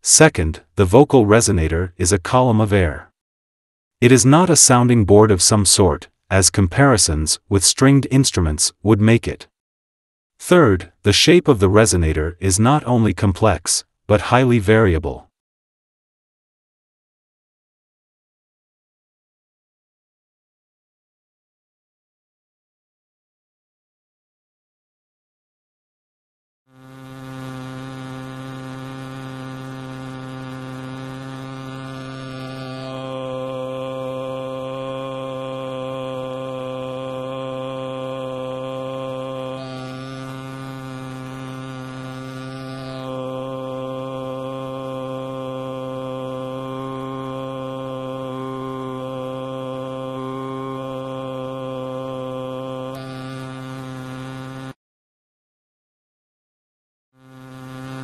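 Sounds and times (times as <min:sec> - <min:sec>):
synthetic vowel tone: 0:26.8 - 0:36.0, 0:37.3 - 0:54.7.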